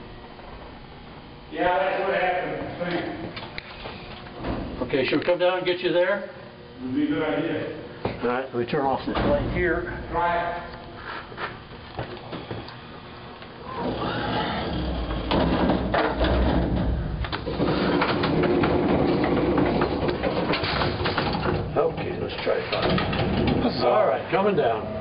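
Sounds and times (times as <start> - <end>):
steady hum: 0.0 - 25.0.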